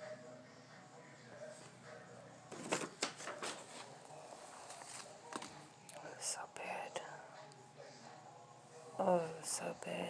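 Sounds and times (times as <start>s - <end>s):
paper rustling and crackling: 2.5s - 5.6s.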